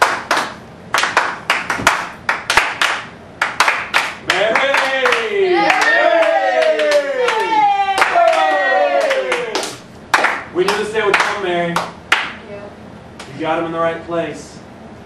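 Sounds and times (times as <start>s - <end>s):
hands clapping: 0.0s - 12.4s
people cheering woo: 4.3s - 9.8s.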